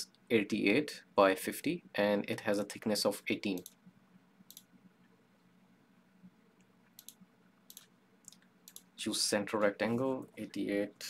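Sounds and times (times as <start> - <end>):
computer mouse clicks: 3.6 - 3.8, 4.5 - 4.7, 6.6 - 8.9.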